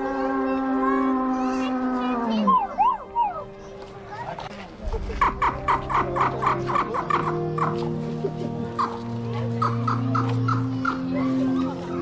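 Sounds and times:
music with long held notes: 0.0s - 12.0s
rapid fowl-like clucking calls: 5.2s - 7.8s, 8.7s - 9.0s.

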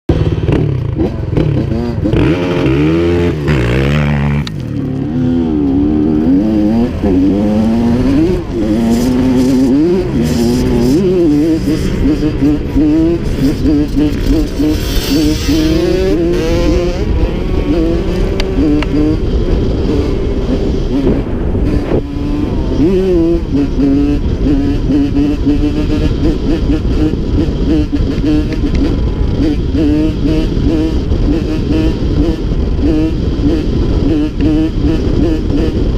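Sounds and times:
dirt bike engine revving: 0.1s - 35.9s.

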